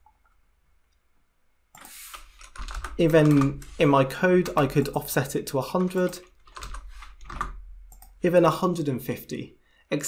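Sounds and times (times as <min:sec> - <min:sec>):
computer keyboard keystrokes: 0:01.8 - 0:03.6, 0:05.8 - 0:08.1.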